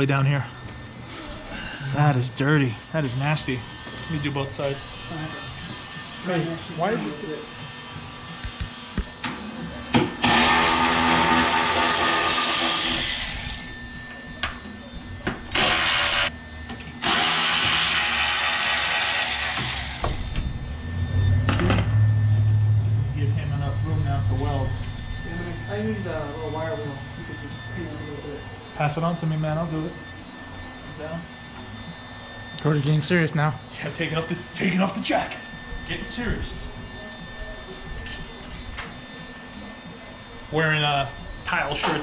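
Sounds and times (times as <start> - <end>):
power tool on sheet metal: 2.6 - 9.2, 10.0 - 13.8, 15.5 - 16.3, 16.9 - 20.5
low steady hum: 19.6 - 42.0
faint voices: 23.0 - 42.0.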